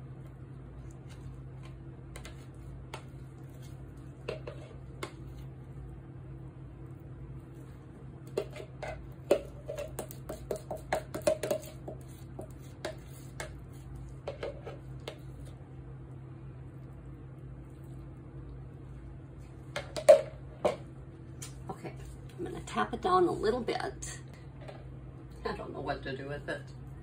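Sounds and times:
steady low hum: 0:00.0 - 0:27.0.

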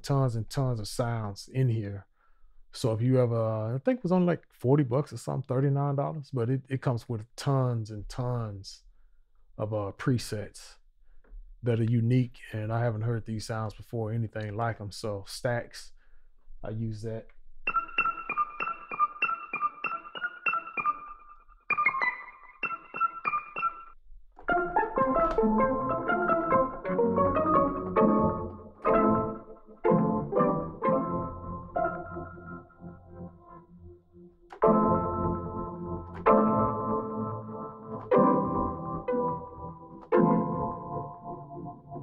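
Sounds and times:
synth chords ringing out: 0:17.7 - 0:42.0.

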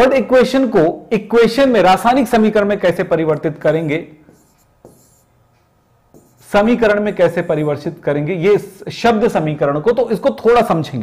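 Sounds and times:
pen scratching on board: 0:03.7 - 0:05.3, 0:06.1 - 0:07.7.

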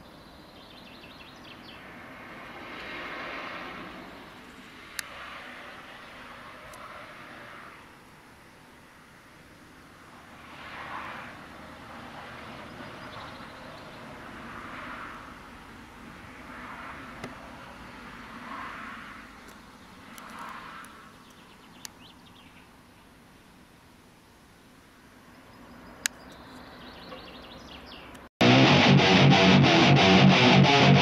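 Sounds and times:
cars passing on road: 0:00.0 - 0:31.0.

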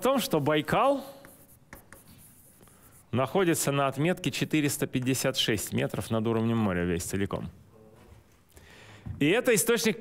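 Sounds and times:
marker scratching on whiteboard: 0:01.1 - 0:03.2.

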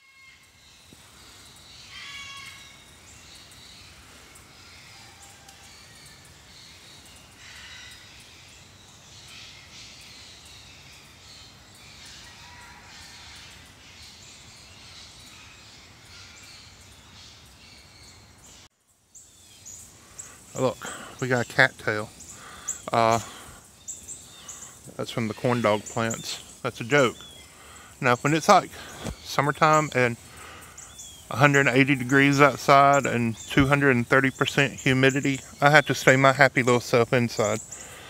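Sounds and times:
bird calls: 0:00.0 - 0:38.0
faint outdoor ambience: 0:00.0 - 0:38.0.

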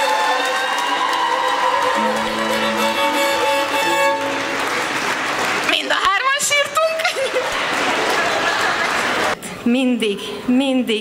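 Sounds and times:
audience applauding and cheering: 0:00.0 - 0:09.4
string band with fiddle: 0:01.8 - 0:05.4.

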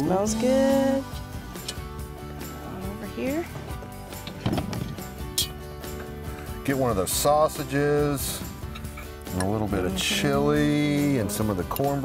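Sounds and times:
background music: 0:00.0 - 0:12.0
cast iron pot clunking down: 0:04.2 - 0:05.2.

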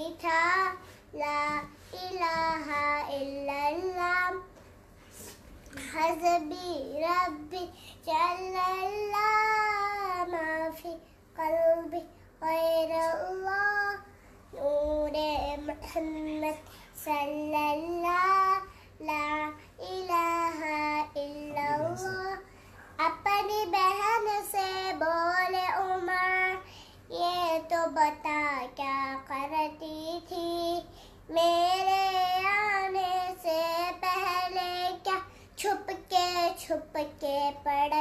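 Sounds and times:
girl singing unaccompanied: 0:00.0 - 0:04.6, 0:05.6 - 0:38.0
girl breathing: 0:07.6 - 0:08.1, 0:16.6 - 0:17.0, 0:18.6 - 0:19.0, 0:22.4 - 0:23.0, 0:26.6 - 0:27.1, 0:30.8 - 0:31.3.

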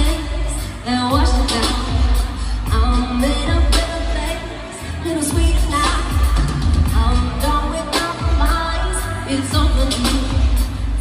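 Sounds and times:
live pop band playing: 0:00.0 - 0:11.0.

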